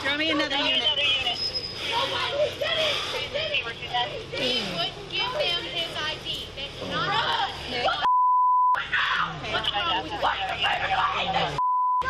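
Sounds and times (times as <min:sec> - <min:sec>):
censor bleep: 0:08.1 - 0:08.8, 0:11.6 - 0:12.0.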